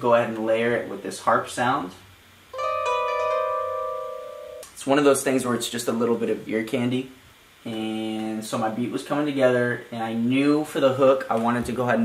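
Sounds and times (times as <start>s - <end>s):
plucked harp notes: 2.6s - 4.7s.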